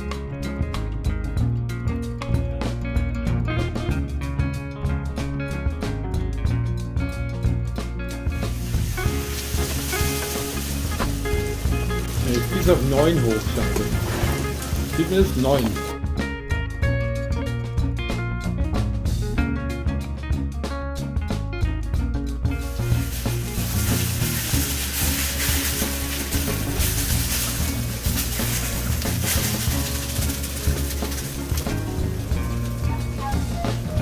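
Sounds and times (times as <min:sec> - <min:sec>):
background music with drum beat: 0:00.0 - 0:34.0
peels sizzling in frying pan: 0:08.3 - 0:16.0, 0:22.5 - 0:34.0.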